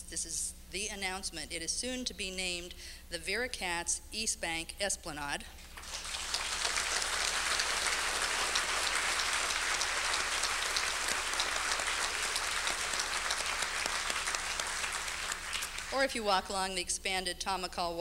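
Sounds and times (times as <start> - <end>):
audience applauding: 5.7 - 16.0.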